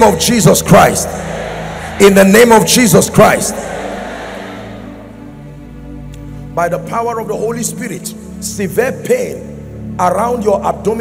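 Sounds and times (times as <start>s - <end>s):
amplified preacher's voice: 0.0s - 11.0s.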